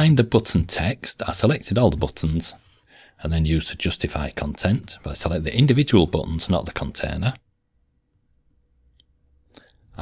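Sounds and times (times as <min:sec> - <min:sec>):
person speaking: 0:00.0 - 0:07.5.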